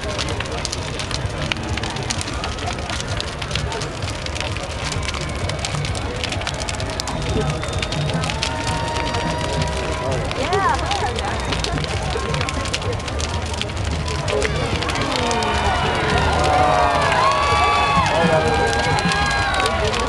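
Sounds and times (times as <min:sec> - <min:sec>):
crowd voices: 0:00.0 - 0:20.0
fire crackling and popping: 0:00.0 - 0:20.0
low rumble of flames: 0:00.0 - 0:20.0.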